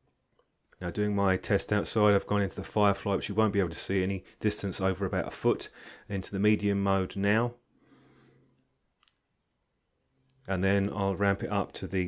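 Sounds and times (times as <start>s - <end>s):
faint clicks: 8.5s - 10.6s.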